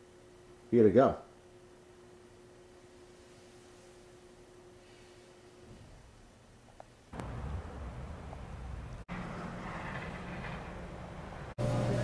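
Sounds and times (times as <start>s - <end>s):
steady electrical hum: 0.0s - 12.0s
vehicle and road noise: 7.2s - 12.0s.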